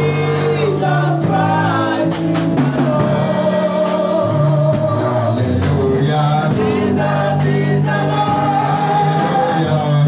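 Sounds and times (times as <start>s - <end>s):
gospel choir singing: 0.0s - 10.0s.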